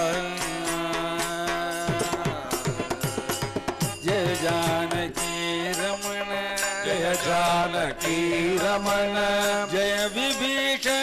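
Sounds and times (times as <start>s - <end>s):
mridangam drum strokes: 0.0s - 10.4s
harmonium: 0.0s - 11.0s
man singing devotional song: 0.0s - 11.0s.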